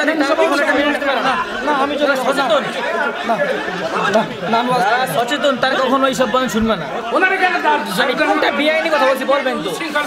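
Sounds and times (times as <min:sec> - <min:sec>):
men talking into a microphone: 0:00.0 - 0:10.0.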